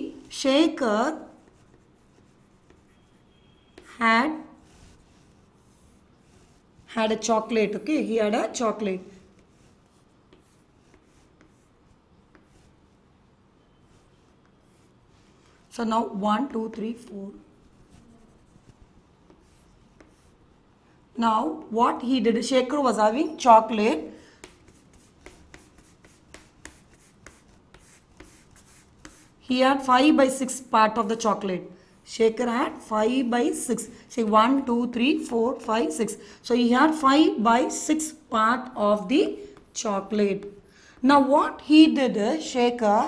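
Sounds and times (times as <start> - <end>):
chalk strokes on chalkboard: 0.1 - 7.5, 8.7 - 20.6, 23.3 - 29.6, 39.0 - 40.6
chalk taps: 0.8 - 4.0, 4.6 - 7.3, 8.7 - 13.0, 13.9 - 15.7, 16.4 - 20.5, 23.7 - 29.5, 39.3 - 41.1.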